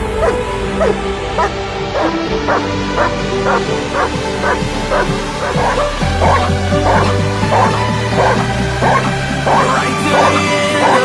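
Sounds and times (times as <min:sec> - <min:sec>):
dog barking: 0:00.2 - 0:11.0
loud dance music: 0:05.4 - 0:11.0.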